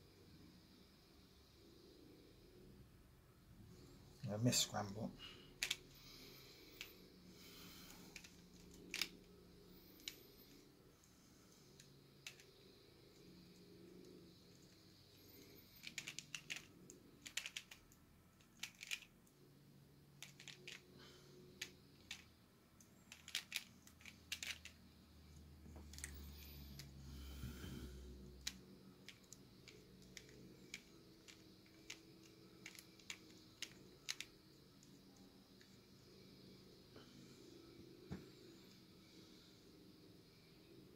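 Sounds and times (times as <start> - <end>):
puzzle pieces clicking: 5.6 - 5.9, 7.9 - 9.2, 12.2 - 12.5, 15.7 - 19.1, 20.2 - 20.9, 21.6 - 22.3, 23.1 - 24.8, 28.4 - 34.3.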